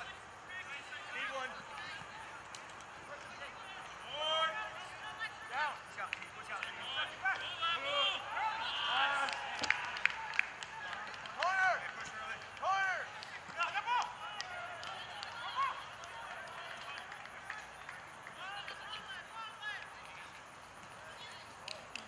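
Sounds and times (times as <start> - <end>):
players shouting calls: 0.0 - 22.0.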